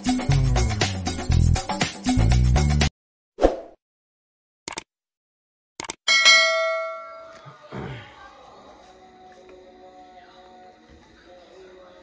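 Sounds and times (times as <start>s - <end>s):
bright bell ding: 6.1s - 7.5s.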